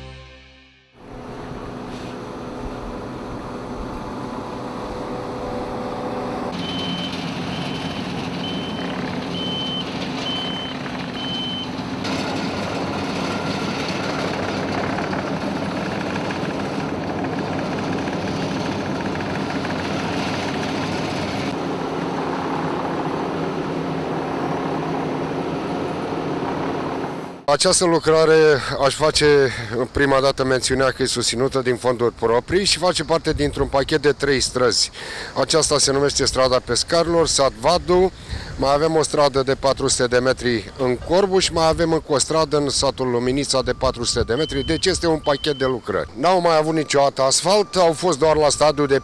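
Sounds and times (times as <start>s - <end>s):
diesel engines running: 1.0s - 49.0s
reversing alarm beeping: 6.5s - 11.8s, 42.5s - 49.0s.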